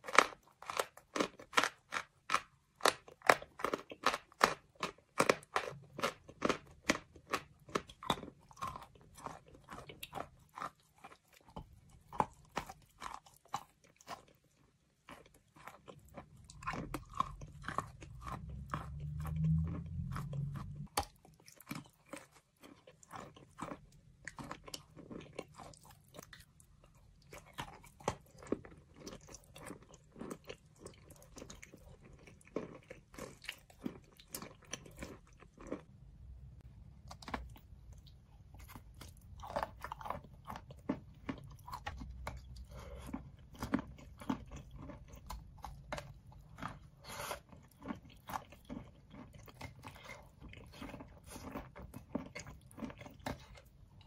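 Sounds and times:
chewing and crunching chalk: 0.0 - 36.0, 37.0 - 54.0
low rumble: 18.1 - 20.9.

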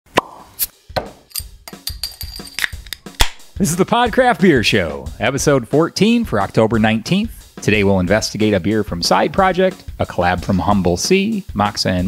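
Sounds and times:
short sharp pops: 2.7 - 3.5.

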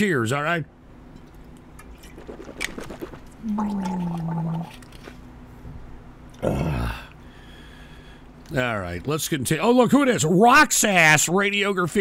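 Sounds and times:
man groaning: 6.4 - 7.2.

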